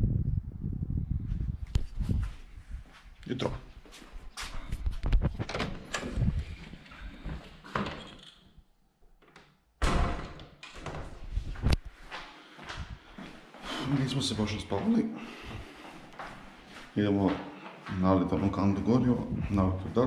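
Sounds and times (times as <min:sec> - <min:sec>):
house door opening and closing: 0:05.0 - 0:11.8.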